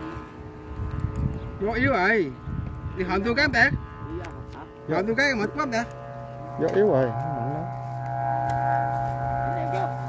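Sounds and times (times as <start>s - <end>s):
wavering lowing tone: 0.0s - 10.0s
kite flutes droning chord: 2.8s - 10.0s.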